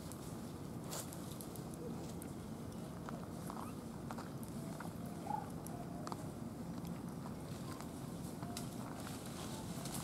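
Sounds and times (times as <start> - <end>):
monkeys rustling on dry leaves: 8.6 - 10.0.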